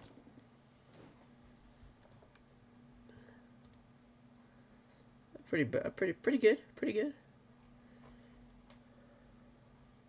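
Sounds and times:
faint steady low hum: 0:00.0 - 0:10.0
computer mouse clicks: 0:03.6 - 0:03.9.

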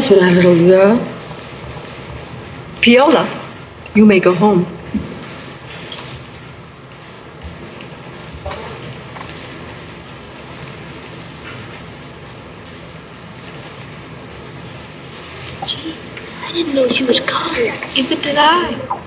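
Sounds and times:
faint hum: 0:00.0 - 0:19.0
film soundtrack hiss: 0:00.0 - 0:19.0
faint rustles and ticks: 0:04.8 - 0:19.0.

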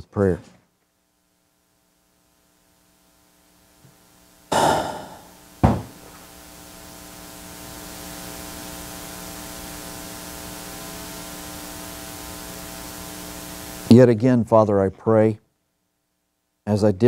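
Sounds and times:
electrical mains hum with hiss: 0:00.0 - 0:17.0
short knock: 0:04.5 - 0:06.0.

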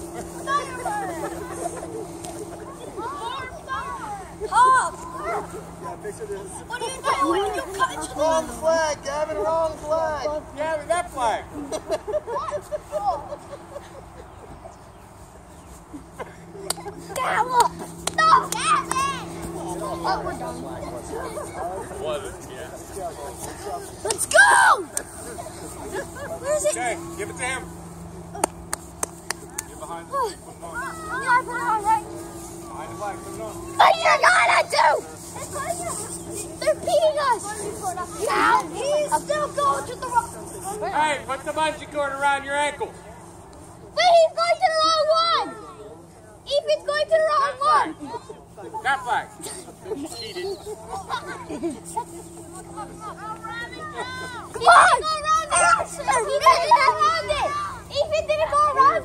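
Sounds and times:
steady low hum: 0:00.0 - 0:59.0
hand claps: 0:16.6 - 0:19.1, 0:28.4 - 0:29.8
children shouting: 0:53.3 - 0:59.0.

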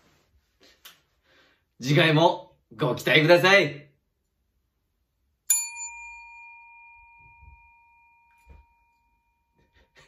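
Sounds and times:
small metal bell ringing: 0:05.5 - 0:09.7.

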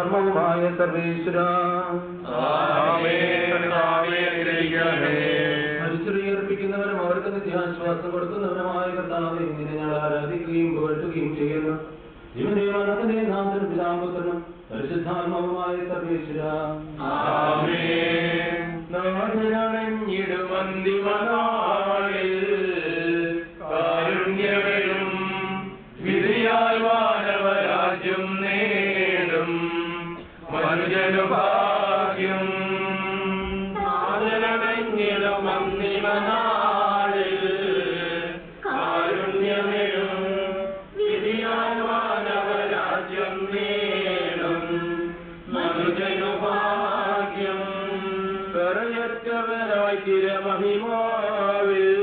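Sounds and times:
man chanting a prayer: 0:00.0 - 0:36.4.

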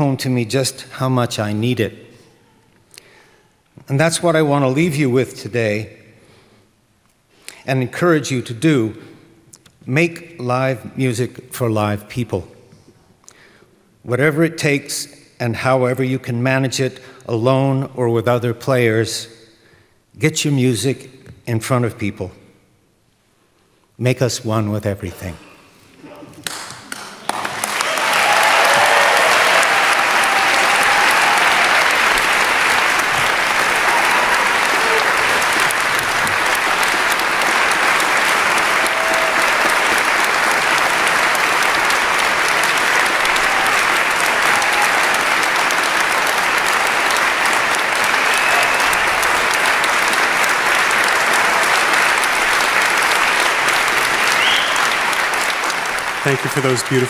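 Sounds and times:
large audience applauding: 0:26.4 - 0:57.0.

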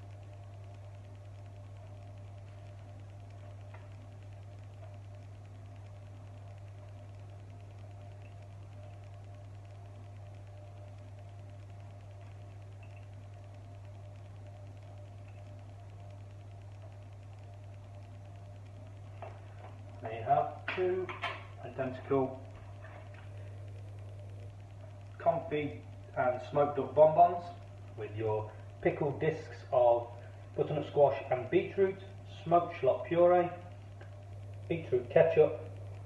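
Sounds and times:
faint steady tone: 0:00.0 - 0:36.0
low electrical hum: 0:00.0 - 0:36.0.

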